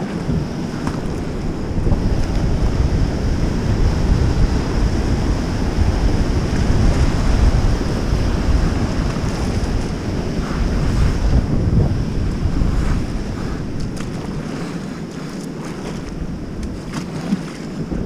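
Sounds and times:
whitewater rapids rushing: 0.0s - 18.0s.

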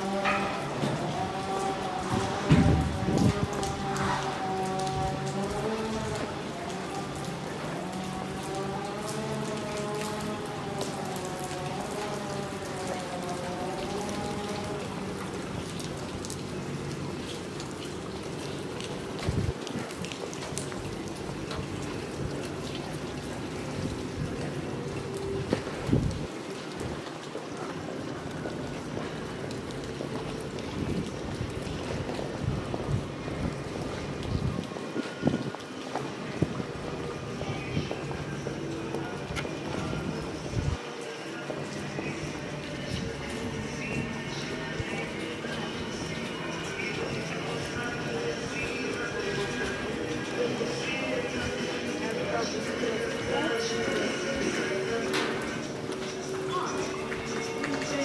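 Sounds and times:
rain on stone paving: 0.0s - 58.0s.

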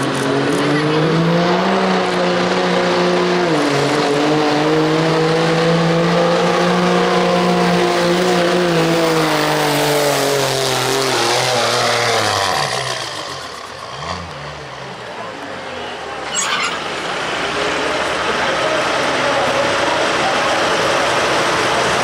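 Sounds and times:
diesel truck engine running flat out: 5.3s - 22.0s.

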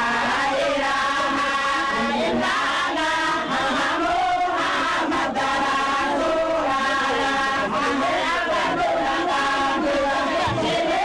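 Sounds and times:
group of voices chanting: 0.0s - 11.0s.

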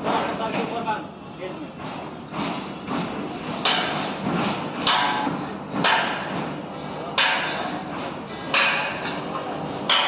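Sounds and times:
hammer striking steel: 3.6s - 4.1s, 4.8s - 6.4s, 7.2s - 7.9s, 8.5s - 9.2s.

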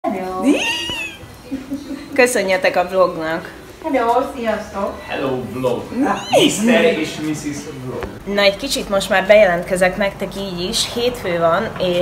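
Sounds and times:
high-pitched sliding vocal call: 6.0s - 6.8s.

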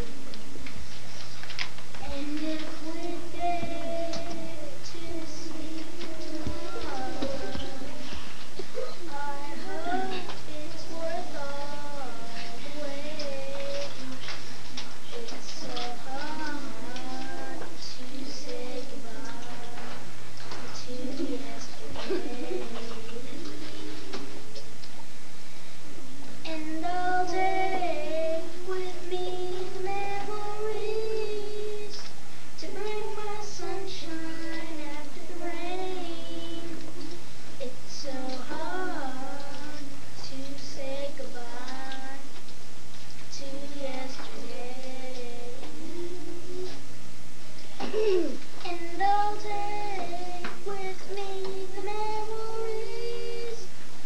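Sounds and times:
children singing held notes: 0.8s - 24.9s, 26.4s - 42.5s, 43.2s - 46.9s, 47.6s - 53.8s
children singing: 2.0s - 14.4s, 15.0s - 24.5s.

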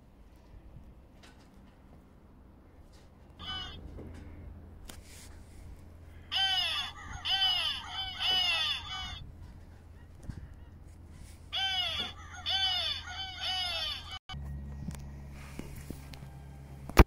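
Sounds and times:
recorded crow caws: 3.4s - 3.9s, 6.1s - 9.2s, 11.5s - 14.2s.

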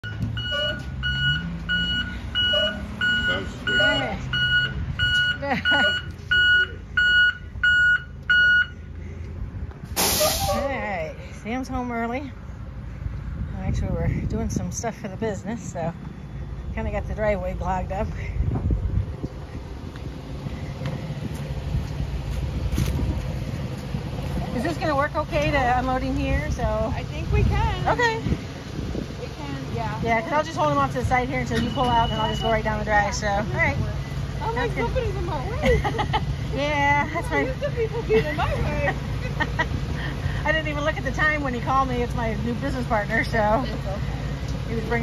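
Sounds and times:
backup alarm beeping: 0.0s - 8.8s, 31.4s - 32.9s
diesel engine running: 0.0s - 45.0s.

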